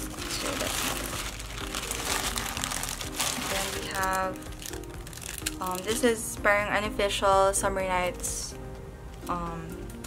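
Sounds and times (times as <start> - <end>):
plastic bag crinkling: 0.0 - 6.2
soft background music: 0.0 - 10.0.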